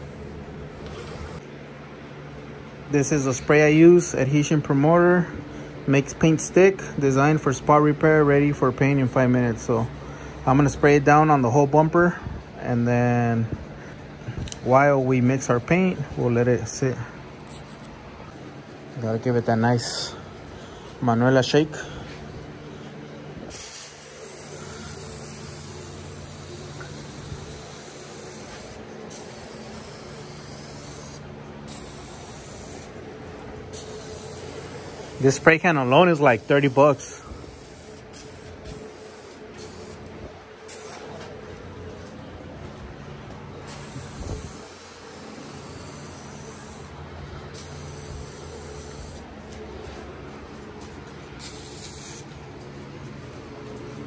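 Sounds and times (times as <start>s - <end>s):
aerosol can spraying: 0.0s - 1.4s, 23.5s - 33.0s, 33.7s - 40.1s, 40.7s - 41.1s, 43.7s - 46.9s, 47.5s - 49.3s, 51.4s - 52.3s
steady low hum: 0.0s - 54.0s.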